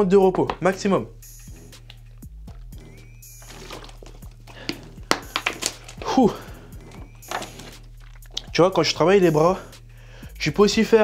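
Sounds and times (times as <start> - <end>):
man gulping water: 6.8 - 8.6.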